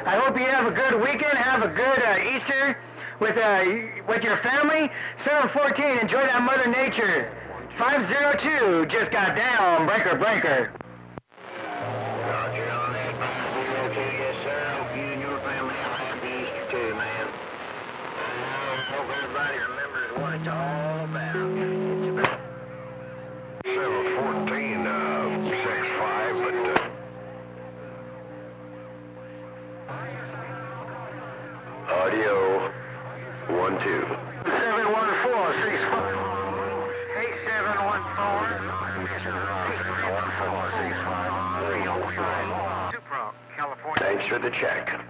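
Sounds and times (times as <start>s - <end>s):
radio whistling tones: 11.4s - 22.4s, 32.0s - 41.1s
garbled radio voices: 11.4s - 27.0s, 29.4s - 45.0s.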